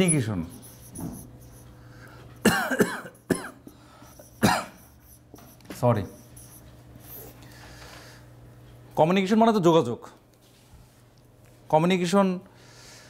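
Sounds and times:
man speaking: 0.0s - 0.6s
man coughing: 2.4s - 5.0s.

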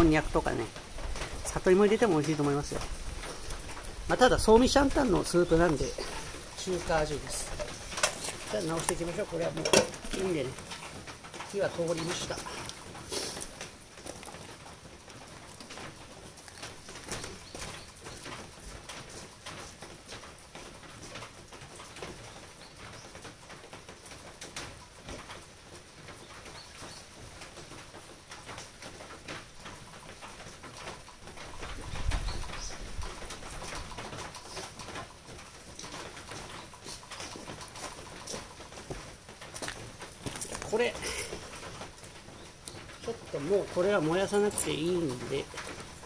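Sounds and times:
rain pattering: 0.0s - 46.0s.

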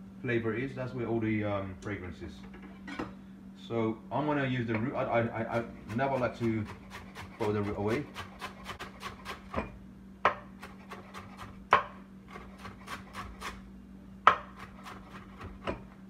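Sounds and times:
knife chopping on cutting board: 5.5s - 13.6s, 14.2s - 15.9s.

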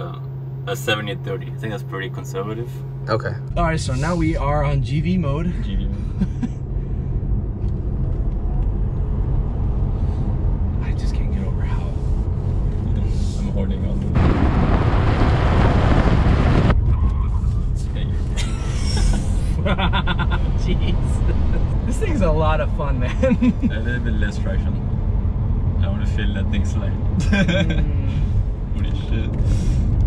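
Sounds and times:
road and tyre rumble: 0.0s - 30.0s
rush of wind and tyre noise: 5.9s - 30.0s.

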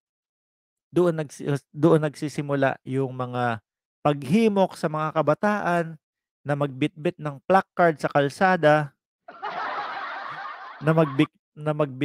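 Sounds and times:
man speaking: 1.0s - 8.9s, 10.8s - 12.0s.

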